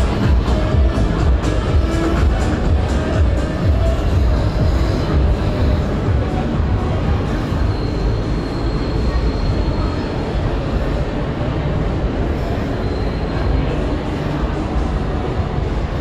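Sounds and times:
city ambience rumble: 0:00.0 - 0:16.0.

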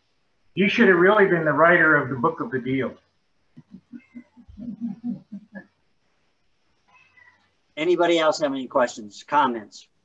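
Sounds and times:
man laughing: 0:03.6 - 0:05.8.

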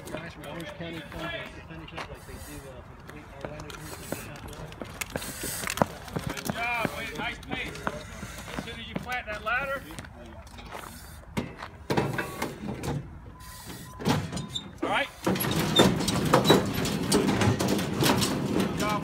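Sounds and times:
outdoor background noise: 0:00.0 - 0:19.0
knocks and clatter: 0:15.2 - 0:19.0.

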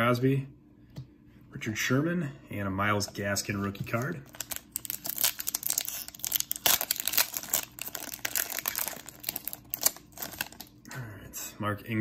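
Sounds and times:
wrapper tearing and crinkling: 0:03.9 - 0:10.8.

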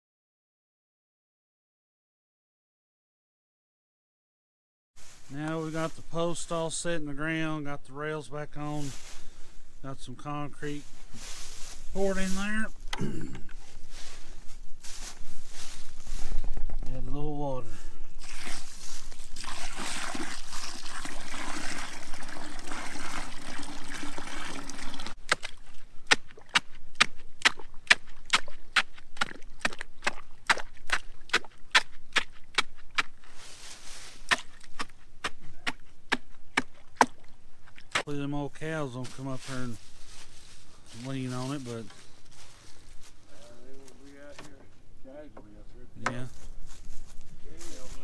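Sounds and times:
water pouring into concrete: 0:18.2 - 0:25.2
stick tapping wet concrete: 0:25.3 - 0:33.1, 0:34.3 - 0:37.2.

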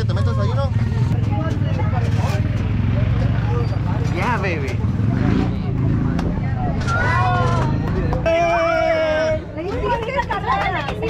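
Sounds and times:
engine running low: 0:00.0 - 0:09.6
voices of people: 0:00.0 - 0:11.0.

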